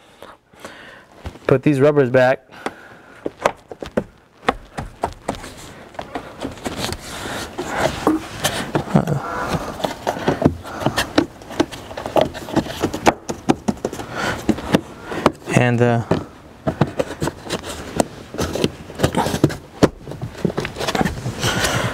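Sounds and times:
rubber rubbing: 3.2 - 21.9.

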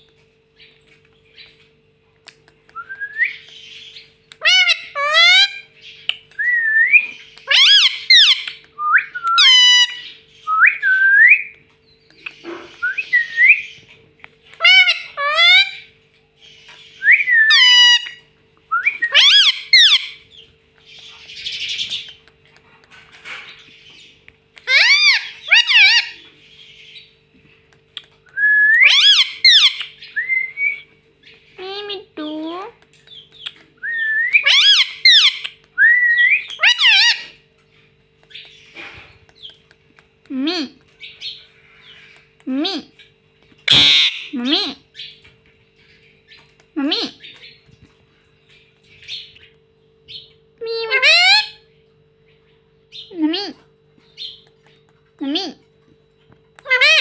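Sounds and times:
parakeet whistled chirps: 16.9 - 20.1, 33.8 - 37.3.

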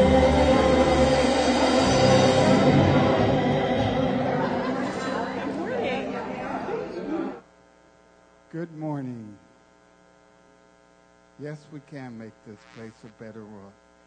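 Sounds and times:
band music: 0.0 - 6.2
congregation chatter: 0.0 - 7.4
mains hum: 0.0 - 14.0.

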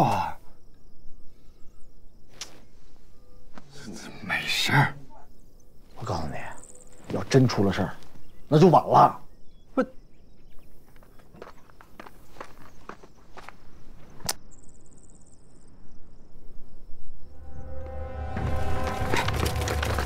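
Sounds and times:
footsteps on earth floor: 6.9 - 8.5, 10.5 - 14.2, 18.4 - 20.0
tense music with low drone: 17.2 - 20.0.

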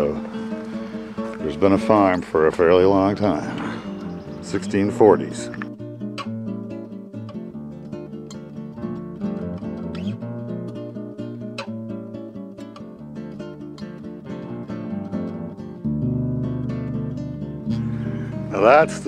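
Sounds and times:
acoustic guitar music: 0.0 - 19.0.

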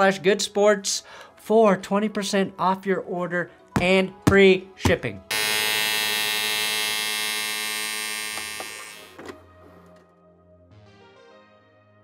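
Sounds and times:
steady electric buzz: 5.3 - 9.2.

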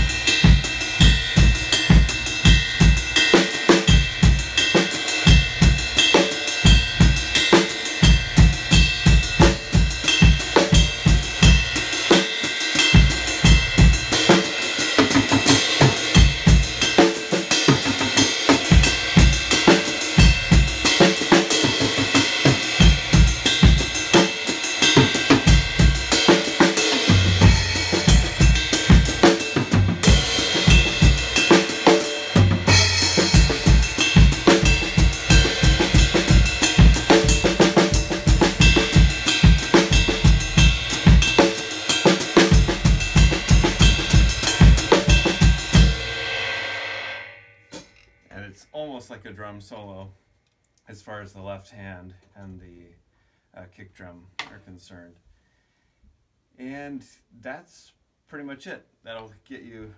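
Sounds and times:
ride cymbal pattern: 0.0 - 46.6.

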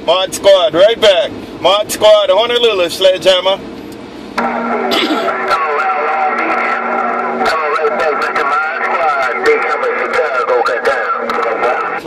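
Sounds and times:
garbled radio voices: 4.4 - 12.0
whistling radio tones: 5.3 - 12.0.

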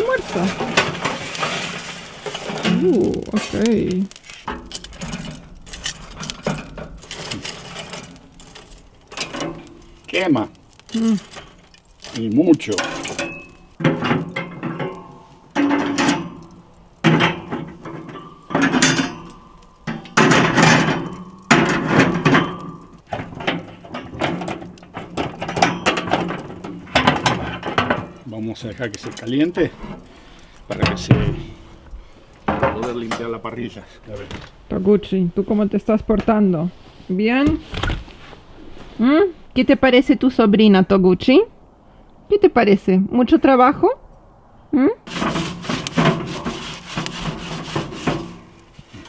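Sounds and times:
charcoal lumps tumbling onto grate: 0.0 - 34.8, 45.1 - 49.0.

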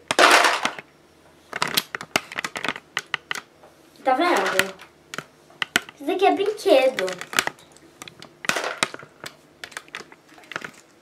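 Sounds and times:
plastic accessories clattering: 5.7 - 10.9.

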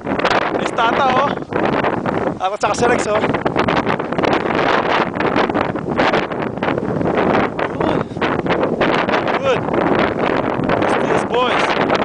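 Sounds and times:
wind rush on microphone: 0.0 - 12.0.

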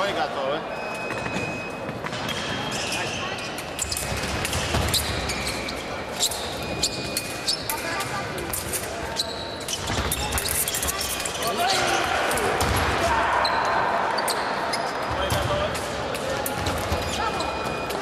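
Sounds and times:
voices in echoing hall: 0.0 - 18.0.

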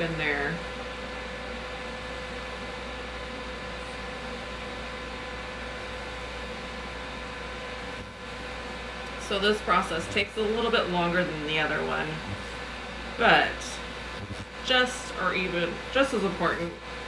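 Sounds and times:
machine humming and hissing: 0.0 - 17.0.

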